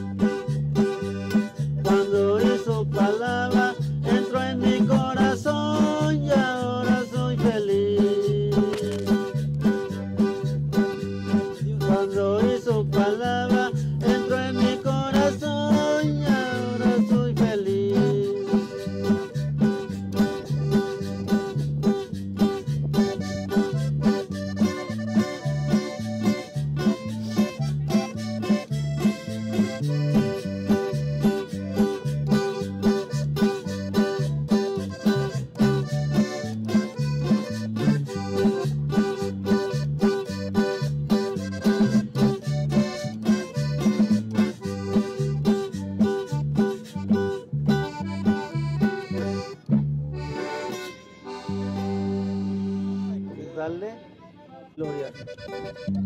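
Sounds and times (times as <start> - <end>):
bass: 0.0 - 54.0, 54.8 - 56.0
button accordion: 0.0 - 56.0
guitars: 0.0 - 56.0
keyboard: 0.0 - 56.0
drums: 12.8 - 50.1.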